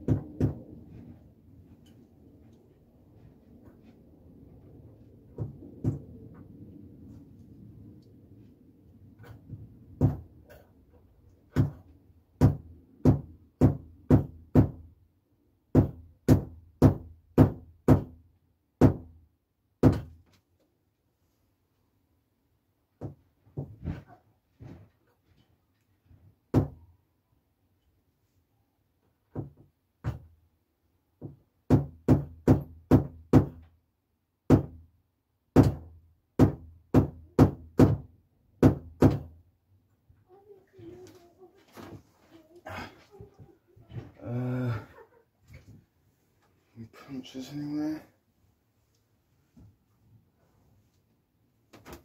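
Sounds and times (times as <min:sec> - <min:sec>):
sharp wooden knocks: 0:10.0 - 0:10.4, 0:11.5 - 0:14.8, 0:35.6 - 0:39.3.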